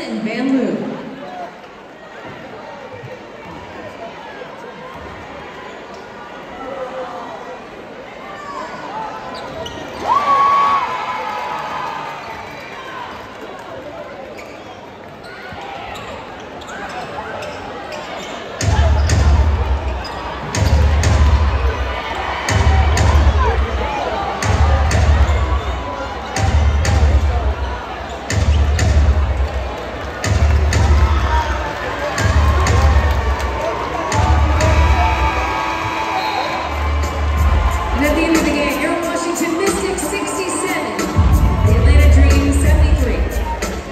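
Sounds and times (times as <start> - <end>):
crowd murmur: 11.7 - 43.9
arena music with heavy bass: 32.2 - 35.8, 36.6 - 43.9.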